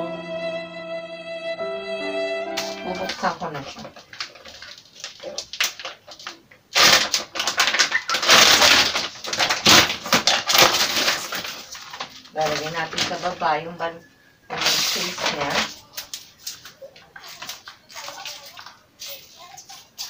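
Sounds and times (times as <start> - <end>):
plastic wrap crinkling and tearing: 2.6 - 20.0.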